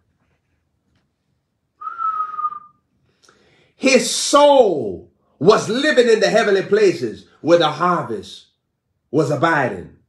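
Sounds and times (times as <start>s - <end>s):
breathy whistle: 1.8s - 3.0s.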